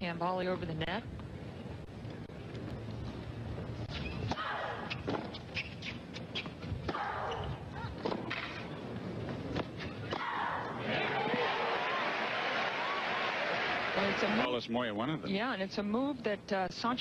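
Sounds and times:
crowd applause and cheering: 0:10.8 - 0:14.5.

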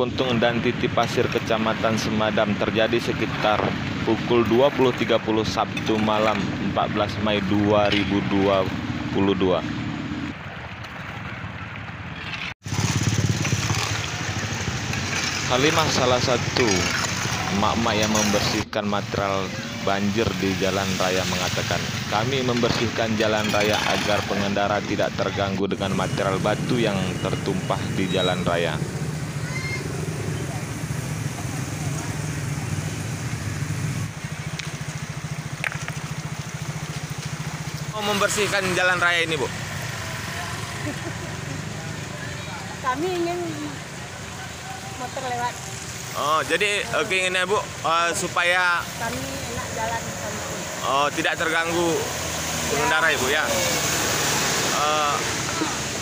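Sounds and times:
motor scooter riding through water: 0:12.6 - 0:18.6, 0:26.0 - 0:56.0.

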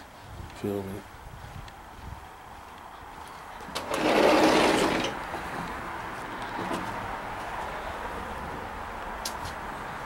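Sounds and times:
sliding door rolling open: 0:03.6 - 0:05.4.

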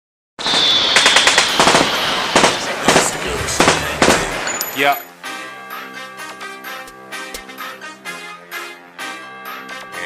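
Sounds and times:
rattle of sharp bangs: 0:00.4 - 0:04.9
loud hiss: 0:00.4 - 0:05.0
high steady whine: 0:00.4 - 0:05.2.

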